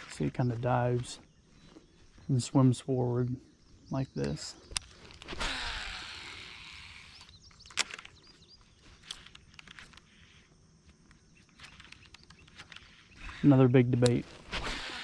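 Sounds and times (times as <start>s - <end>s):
fishing reel spool whirring: 5.2s - 8.2s, 11.8s - 13.8s, 14.5s - 15.0s
sharp click: 13.9s - 14.2s.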